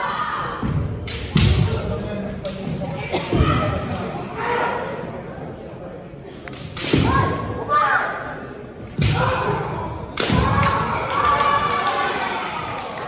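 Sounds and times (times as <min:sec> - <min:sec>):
loud drawn-out yells: 0:09.1 - 0:13.0.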